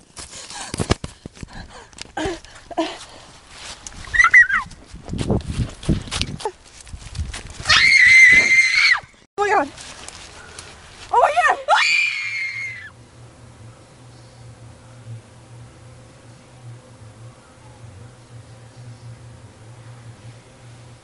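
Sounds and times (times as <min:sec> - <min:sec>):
rustling: 0:00.0 - 0:08.4, 0:09.4 - 0:12.3
girls screaming: 0:07.7 - 0:09.1, 0:11.7 - 0:12.9
faint steady hum: 0:09.0 - 0:21.0.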